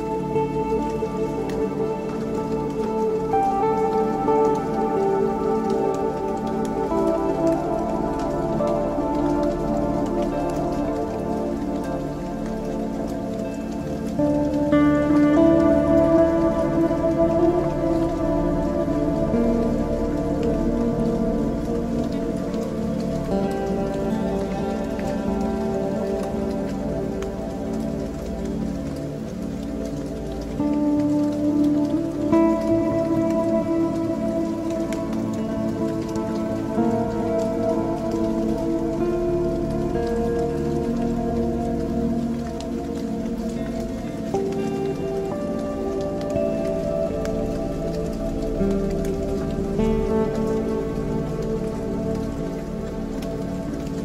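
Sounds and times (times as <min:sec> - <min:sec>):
ambient electronic drone chords: 0:00.0 - 0:54.0
rain-like patter: 0:00.0 - 0:54.0.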